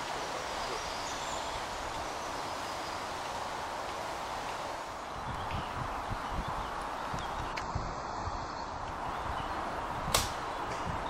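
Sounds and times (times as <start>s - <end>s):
bow string snap: 10.1s - 10.8s.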